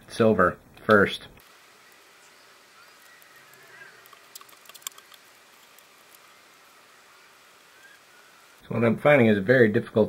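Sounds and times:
light clicks of small metal parts: 3.0 - 6.3.

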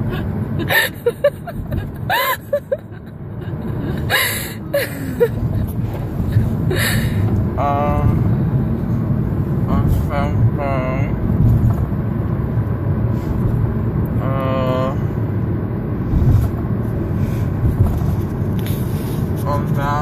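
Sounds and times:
car cabin road rumble: 0.0 - 20.0.

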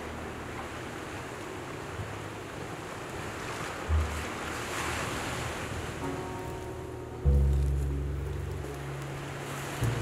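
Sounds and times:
waves: 0.0 - 10.0
low bass drone: 6.6 - 10.0.

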